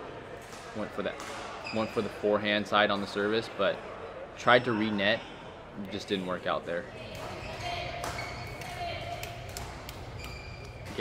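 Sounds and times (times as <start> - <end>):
low hum of large hall: 0.0 - 11.0.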